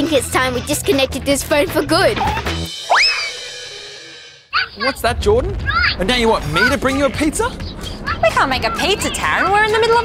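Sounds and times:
rising whistle swoop: 2.8s - 3.5s.

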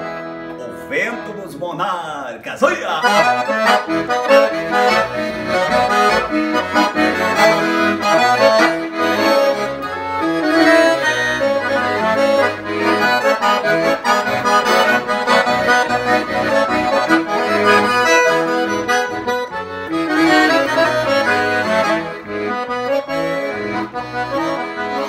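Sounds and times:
piano accordion playing: 0.0s - 25.0s.

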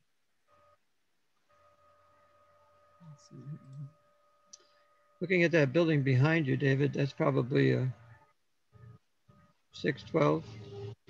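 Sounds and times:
faint steady electronic tone: 0.0s - 11.0s.

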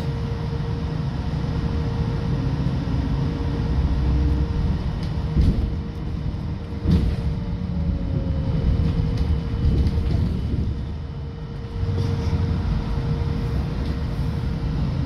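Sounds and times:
trolleybus rumbling: 0.0s - 15.0s.

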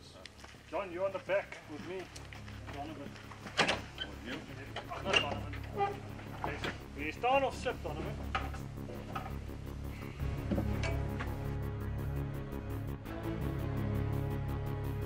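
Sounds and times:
men talking: 0.0s - 9.3s
low steady hum: 0.0s - 15.0s
music: 0.4s - 15.0s
gear knocking and clanking: 2.1s - 9.7s.

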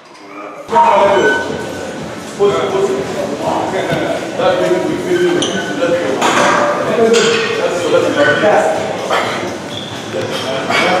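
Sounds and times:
men talking indistinctly: 0.1s - 11.0s.

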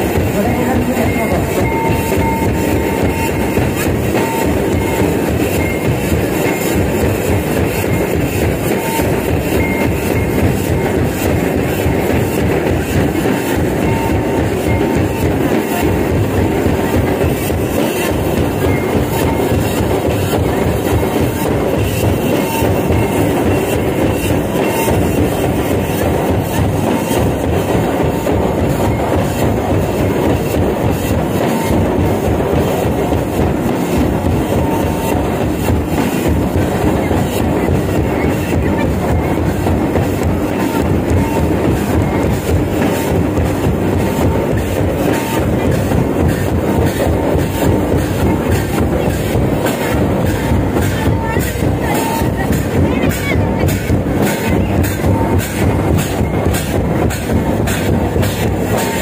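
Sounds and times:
loud distorted dance music: 0.0s - 59.0s
repeating drum beat: 0.0s - 59.0s.

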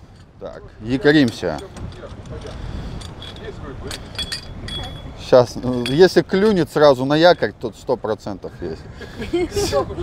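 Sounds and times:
light metallic clinks: 0.0s - 7.6s
steady background noise: 0.0s - 10.0s.

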